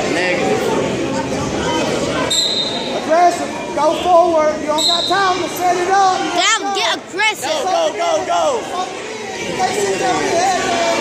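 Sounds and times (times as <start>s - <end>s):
people shouting in gym hall: 1.4s - 11.0s.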